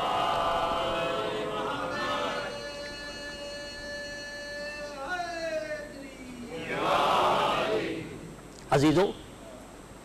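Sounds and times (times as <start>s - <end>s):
group chanting in unison: 0.0s - 2.6s, 6.5s - 8.3s.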